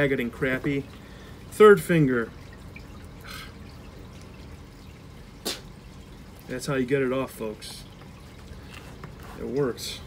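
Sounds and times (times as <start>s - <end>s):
water trickling: 0.0s - 10.0s.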